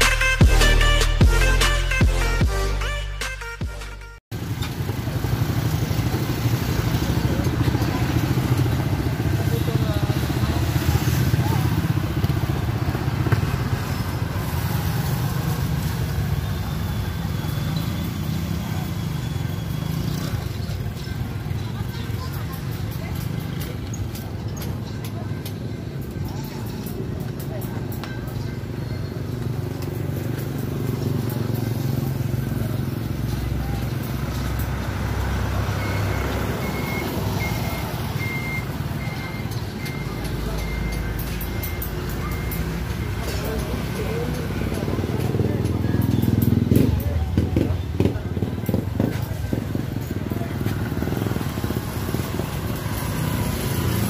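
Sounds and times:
vehicles passing: 4.3 - 54.0
repeating high beep: 35.7 - 43.4.

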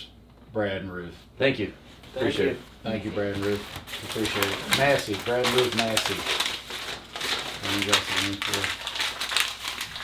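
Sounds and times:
person speaking: 0.8 - 6.5
packaging crinkling: 3.2 - 10.0.

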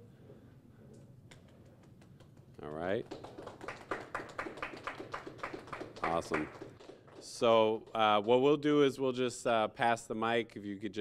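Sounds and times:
people clapping lightly: 1.3 - 8.8.

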